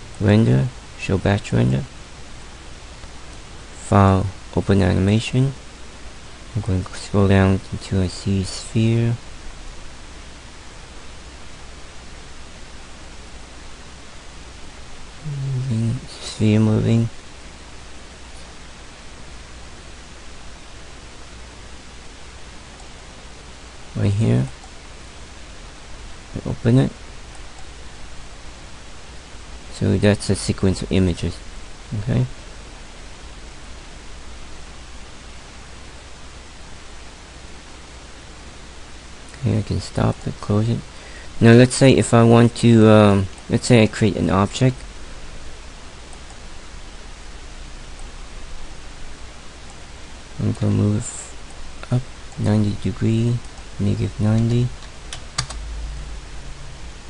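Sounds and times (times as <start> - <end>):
faint low hum: 0.0 - 57.0
steady background hiss: 0.0 - 57.0.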